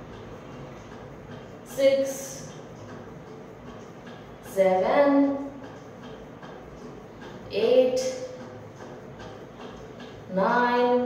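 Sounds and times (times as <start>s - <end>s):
faint regular ticking: 0.0s - 11.0s.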